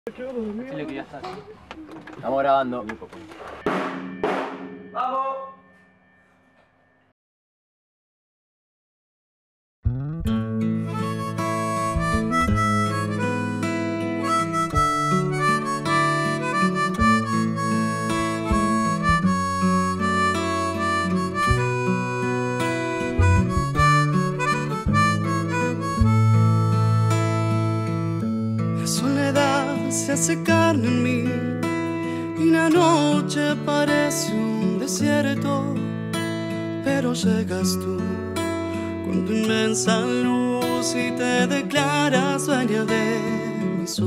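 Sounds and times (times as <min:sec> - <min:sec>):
band playing a pop-folk ballad: 0:10.9 - 0:28.2
man singing: 0:28.8 - 0:31.7, 0:32.3 - 0:35.9, 0:36.8 - 0:38.4, 0:39.0 - 0:44.0.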